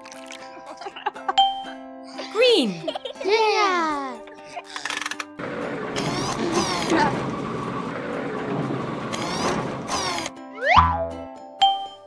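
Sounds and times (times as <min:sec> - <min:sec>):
children's background music: 0:00.0 - 0:05.0
mechanical whirring and ratcheting: 0:04.8 - 0:10.3.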